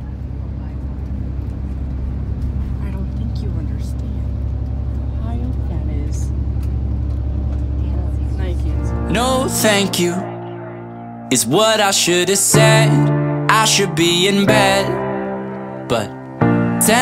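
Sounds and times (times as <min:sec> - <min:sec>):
coach engine and road noise: 0:00.0 - 0:17.0.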